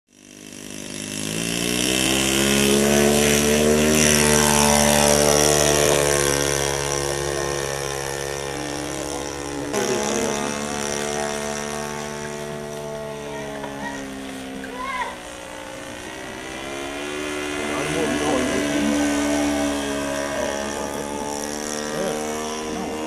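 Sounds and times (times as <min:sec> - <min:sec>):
model airplane engine: 0:00.1 - 0:23.0.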